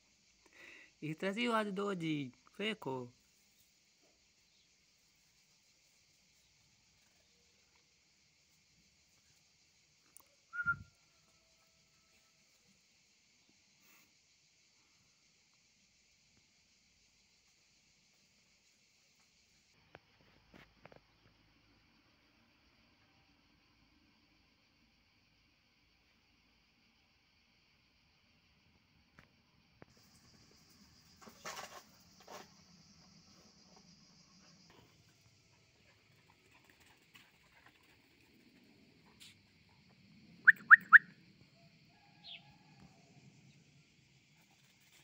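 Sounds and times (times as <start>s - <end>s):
faint steady hiss: 0.0s - 40.0s
faint ticks: 10.0s - 10.4s.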